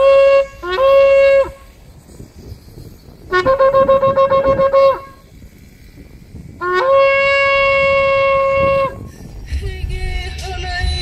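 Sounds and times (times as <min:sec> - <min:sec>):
shofar blasts: 0:00.0 - 0:01.8, 0:03.3 - 0:05.2, 0:06.6 - 0:09.1.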